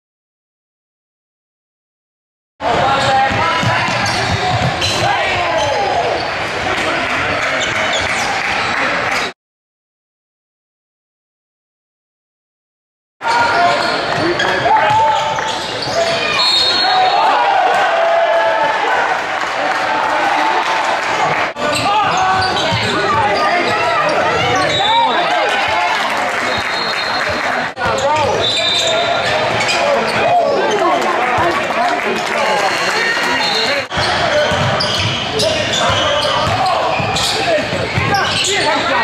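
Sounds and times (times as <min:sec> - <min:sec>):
players' voices: 0:02.6 - 0:09.3, 0:13.2 - 0:39.0
sneakers squeaking: 0:02.8 - 0:09.3, 0:13.3 - 0:17.2, 0:21.6 - 0:25.3, 0:26.5 - 0:30.8, 0:32.6 - 0:39.0.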